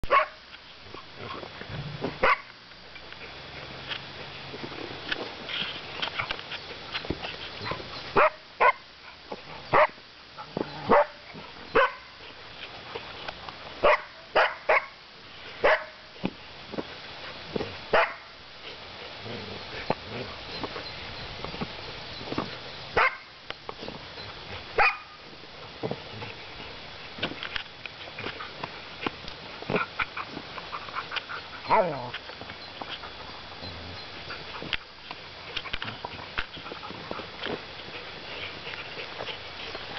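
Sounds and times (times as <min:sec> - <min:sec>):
dog barking: 0:00.1 - 0:00.4, 0:02.2 - 0:02.5, 0:07.6 - 0:08.8, 0:10.9 - 0:11.2, 0:11.8 - 0:12.1, 0:13.8 - 0:14.9, 0:15.6 - 0:16.0, 0:18.0 - 0:18.2, 0:23.0 - 0:23.3, 0:24.8 - 0:25.2.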